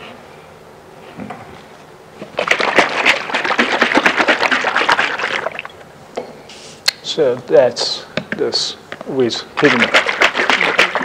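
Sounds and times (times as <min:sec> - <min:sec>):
liquid sloshing in a jar: 0:02.2 - 0:05.8, 0:09.6 - 0:11.0.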